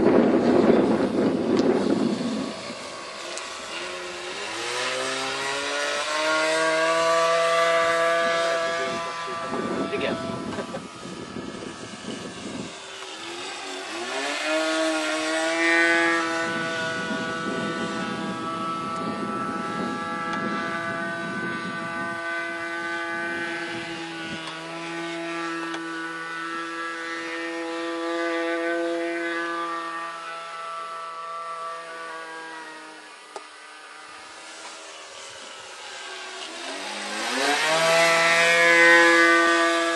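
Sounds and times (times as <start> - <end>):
model airplane engine in flight: 0.0 - 39.9.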